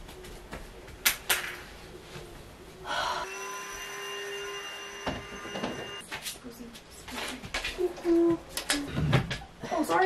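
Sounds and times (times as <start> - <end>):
steady ringing tone: 3.2 - 6.0.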